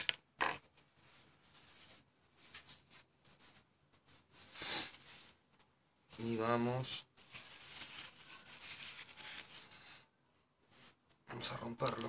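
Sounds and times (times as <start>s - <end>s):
handling and rustling: 7.2s - 9.8s.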